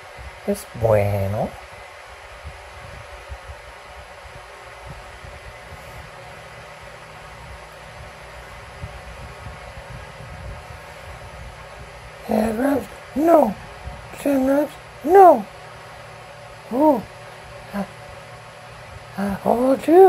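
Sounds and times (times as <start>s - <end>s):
steady room hiss: 0.0s - 20.0s.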